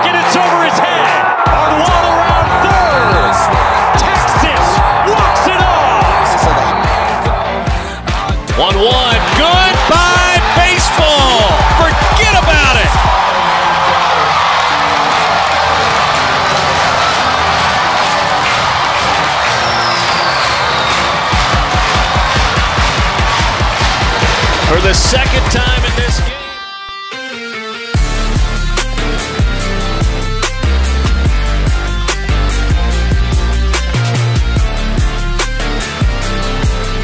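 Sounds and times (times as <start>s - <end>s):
stadium crowd cheering: 0.0s - 26.7s
music with steady beat: 1.5s - 13.2s, 15.1s - 37.0s.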